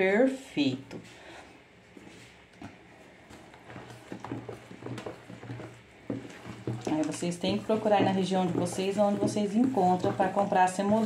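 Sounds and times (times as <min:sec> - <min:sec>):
spatula knocking plastic bowl: 0:04.2 - 0:11.0.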